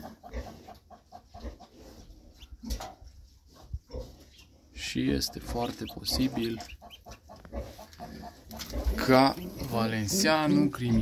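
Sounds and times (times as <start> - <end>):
pigeons calling: 4.0 - 11.0.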